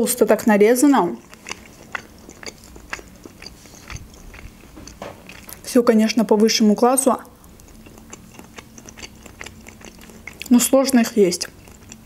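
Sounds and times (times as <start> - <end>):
person chewing food: 0.8 - 5.7, 7.3 - 12.0.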